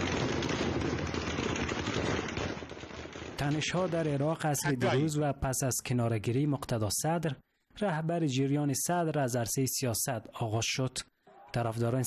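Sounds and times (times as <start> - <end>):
rapid gunfire: 0.0 - 4.3.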